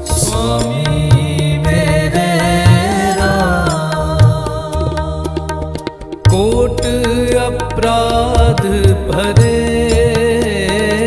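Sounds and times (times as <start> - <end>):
devotional singing: 0.0 - 11.0
harmonium: 0.0 - 11.0
tabla drum strokes: 0.0 - 11.0.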